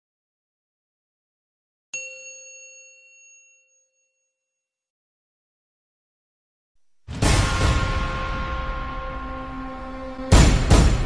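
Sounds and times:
bell-like ding: 2.0 - 4.7.

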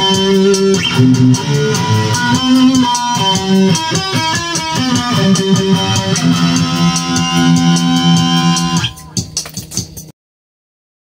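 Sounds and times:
guitar chord ringing: 0.0 - 9.2.

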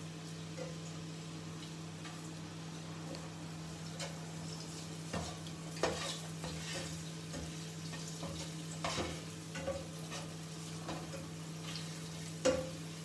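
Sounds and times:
eggs sizzling in oil: 0.0 - 13.0.

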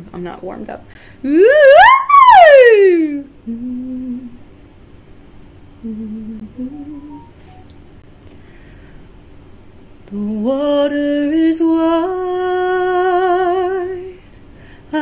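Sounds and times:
woman vocal siren: 1.3 - 3.8.

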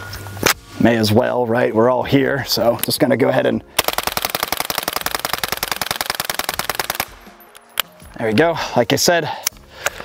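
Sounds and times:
suppressed gunshots in rapid string: 3.8 - 7.3.

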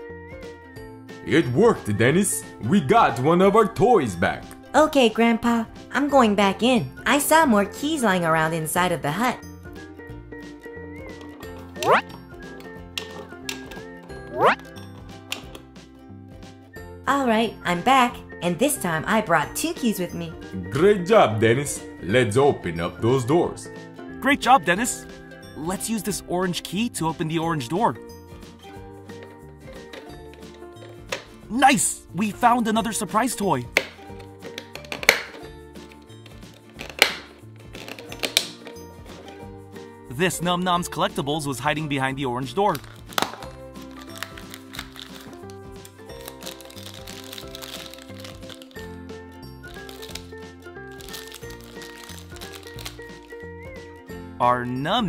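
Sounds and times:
light background music: 0.0 - 55.0.

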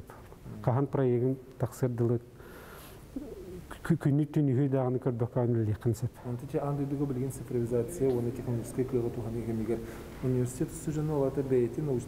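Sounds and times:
low hum-like vocal sound: 0.4 - 0.9, 3.0 - 4.0
man speaking: 0.4 - 2.3, 3.7 - 12.0.

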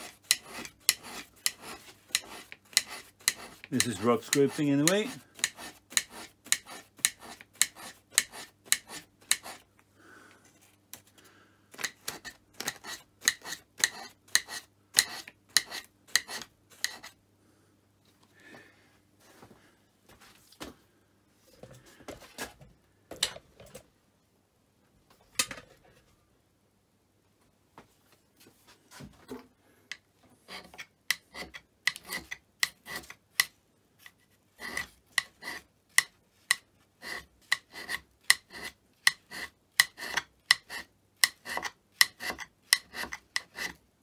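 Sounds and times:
hand scraper scraping cast iron: 0.0 - 9.6, 11.8 - 17.2, 30.4 - 43.8.

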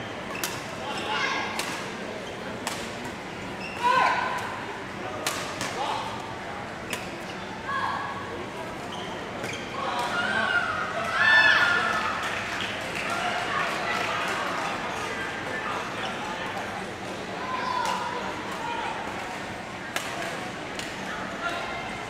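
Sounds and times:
voices in echoing hall: 0.0 - 22.0.

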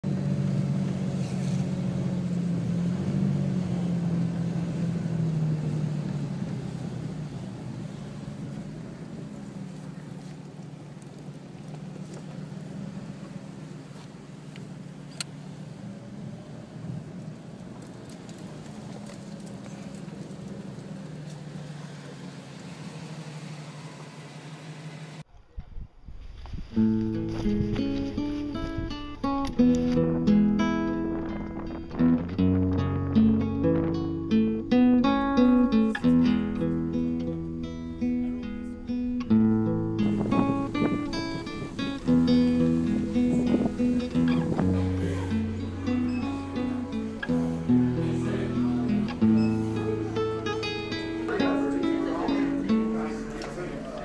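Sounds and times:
car engine and road noise: 0.0 - 25.3, 26.4 - 54.0
soft low bumps: 25.6 - 53.9.

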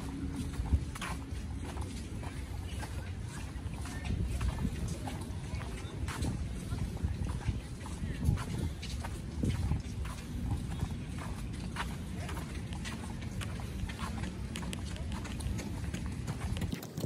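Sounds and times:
footsteps on concrete: 0.0 - 17.0
wind rumble on microphone: 0.0 - 17.0.

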